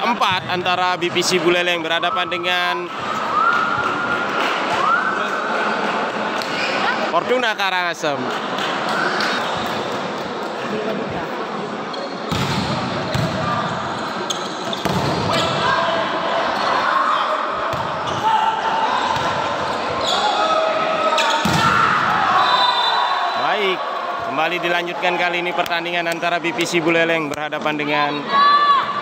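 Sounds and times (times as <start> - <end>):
volleyballs struck and bouncing: 12.3 - 13.5, 14.7 - 15.4.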